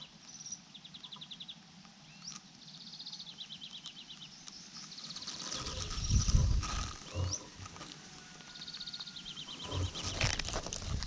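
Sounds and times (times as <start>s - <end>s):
songbirds singing trills: 0.0s - 11.0s.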